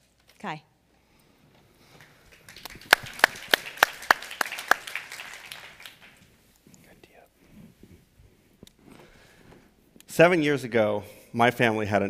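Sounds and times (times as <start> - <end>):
audience applause: 1.9 - 6.3.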